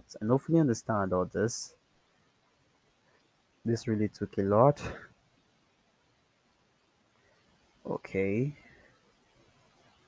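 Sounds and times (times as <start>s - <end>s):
man speaking: 0.0s - 1.8s, 3.7s - 5.1s, 7.9s - 8.6s.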